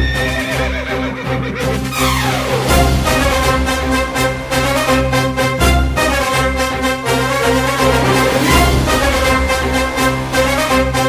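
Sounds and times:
horse whinnying: 0:00.0 - 0:02.3
background music with steady beat: 0:00.0 - 0:11.0.

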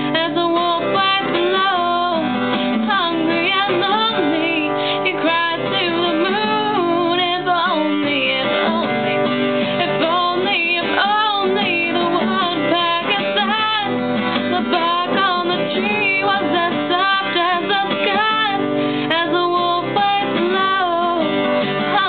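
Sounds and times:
guitar playing: 0:00.0 - 0:22.0
person singing: 0:00.0 - 0:22.0.

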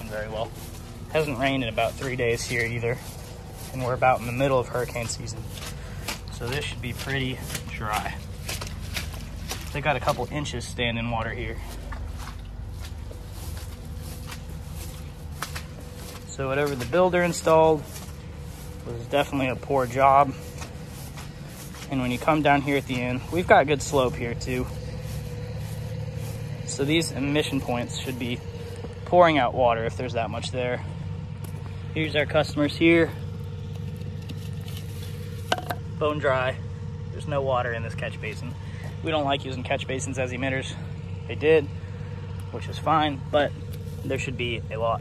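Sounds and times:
footsteps on soggy lawn: 0:00.0 - 0:45.0
low motor hum: 0:00.0 - 0:45.0
low rumble: 0:00.0 - 0:45.0.

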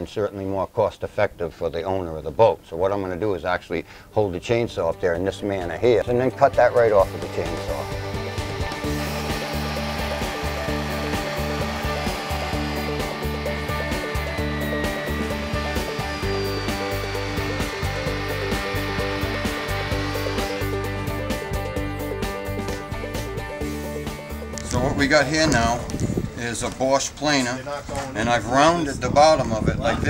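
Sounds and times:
chainsaw cutting wood: 0:06.8 - 0:24.7.

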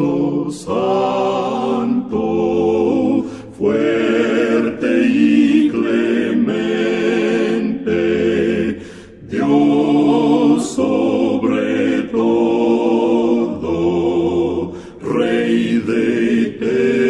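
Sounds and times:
male quartet singing a hymn: 0:00.0 - 0:17.0.

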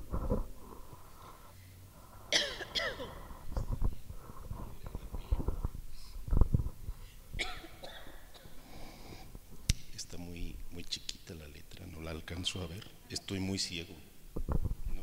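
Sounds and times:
microphone handling bumps: 0:00.0 - 0:01.0, 0:03.2 - 0:07.5.

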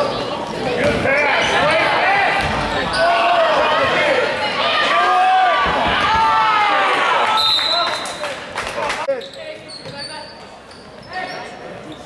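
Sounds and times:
spectators shouting: 0:01.1 - 0:07.9
short high squeaks: 0:09.1 - 0:12.0.

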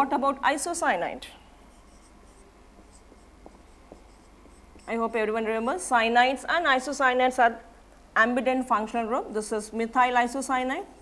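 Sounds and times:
marker pen writing on whiteboard: 0:01.6 - 0:05.2.

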